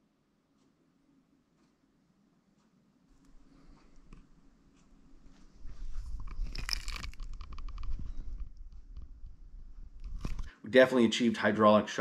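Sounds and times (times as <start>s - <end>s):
sharp crackles: 5.9s - 10.5s
camera handling noise: 6.0s - 10.5s.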